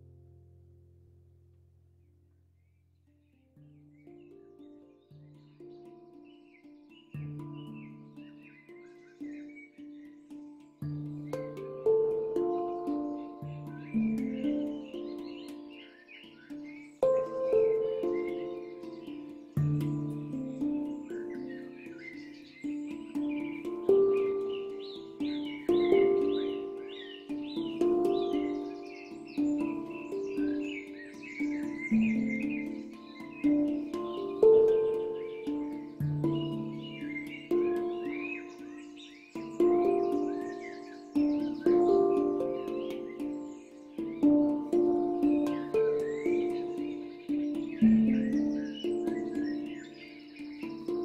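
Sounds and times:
handpan notes ringing: 0.0 - 0.8, 3.2 - 51.0
birdsong chirping: 2.4 - 51.0.

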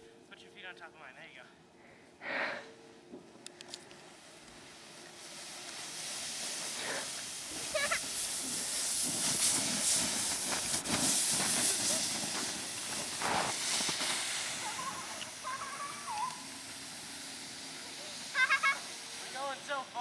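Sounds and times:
rushing hiss: 4.1 - 20.0
short high yelps: 14.6 - 16.5.

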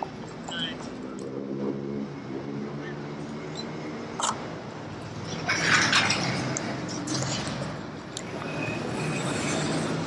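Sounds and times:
people's voices: 0.0 - 1.4.

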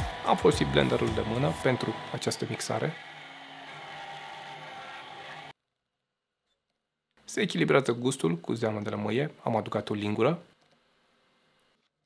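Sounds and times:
stick blender running: 0.0 - 5.5.

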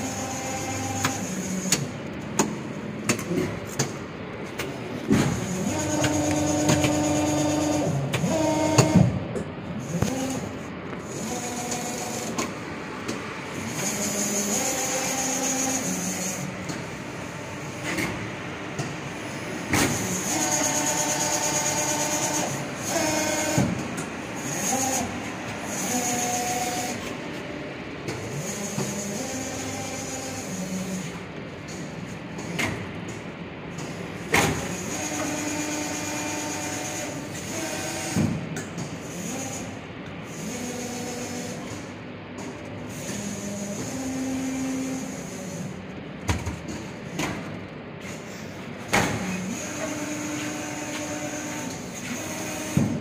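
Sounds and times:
machine motor tone: 0.0 - 2.2, 4.9 - 32.6, 33.7 - 38.4, 49.0 - 53.0.

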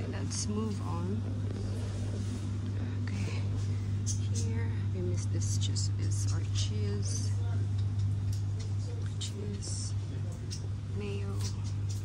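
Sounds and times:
person's voice: 0.0 - 1.3, 2.8 - 7.6
low machine hum: 0.0 - 12.0.

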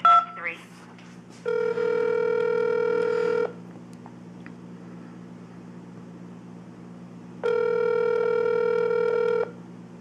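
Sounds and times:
low steady hum: 0.0 - 10.0
telephone ringback tone: 1.4 - 3.6, 7.4 - 9.6.

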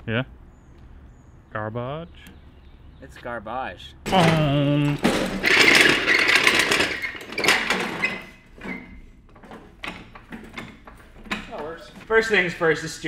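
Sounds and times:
scattered clicks and knocks: 4.1 - 12.4
go-kart wheels rattling: 4.1 - 13.0.

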